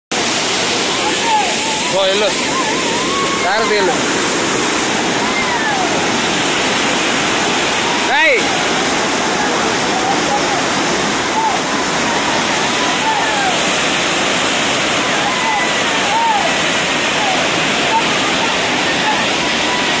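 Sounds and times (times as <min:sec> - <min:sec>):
waterfall rushing: 0:00.1 - 0:20.0.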